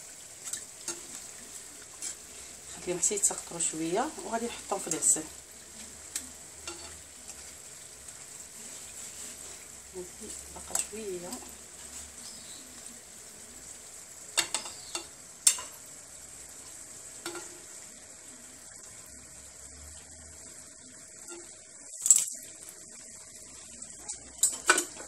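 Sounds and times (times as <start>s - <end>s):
pastries sizzling in frying oil: 0.0s - 25.0s
metal skimmer clinking against pan: 6.7s - 7.0s.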